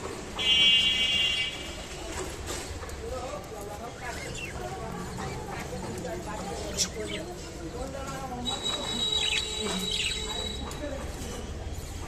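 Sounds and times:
budgerigars chirping and warbling: 4.0s - 7.6s, 8.6s - 10.7s.

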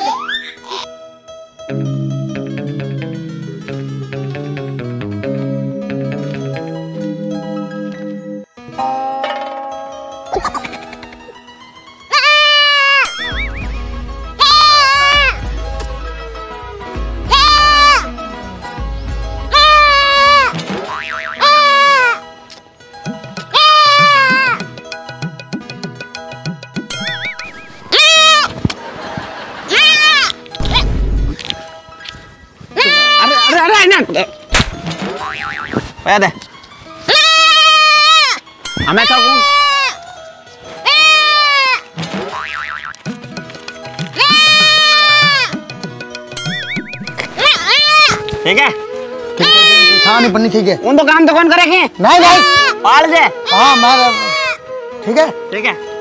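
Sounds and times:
background music: 0.0s - 56.0s
young goat bleating: 12.1s - 13.3s, 14.4s - 15.4s, 17.3s - 18.1s, 23.5s - 24.6s, 32.8s - 33.5s, 37.1s - 38.4s, 40.8s - 41.8s, 44.2s - 45.6s, 47.4s - 48.2s, 49.4s - 50.1s, 53.4s - 54.6s.

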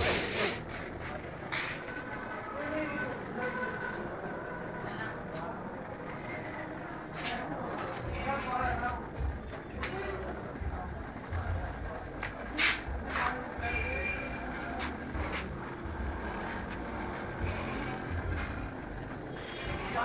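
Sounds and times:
indistinct background voices: 0.0s - 20.0s.

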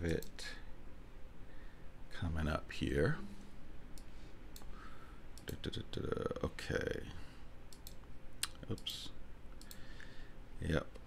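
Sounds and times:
computer mouse clicks: 3.9s - 4.7s, 7.7s - 9.0s, 9.6s - 9.8s.

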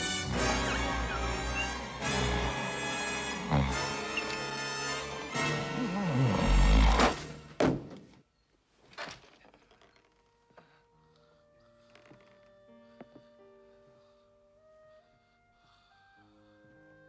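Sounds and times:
loud fast film score music: 0.0s - 6.2s
soft gentle music: 0.0s - 7.4s, 9.7s - 17.0s.

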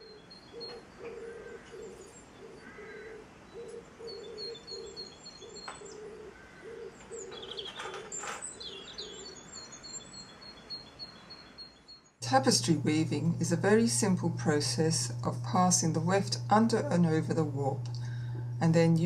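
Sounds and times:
pigeon cooing: 0.0s - 9.4s, 16.5s - 18.6s
small birds chirping: 0.0s - 12.2s.

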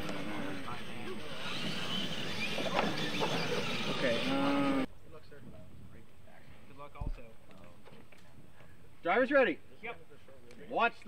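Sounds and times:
people talking in background: 0.0s - 11.0s
steady outdoor noise: 0.0s - 11.0s.

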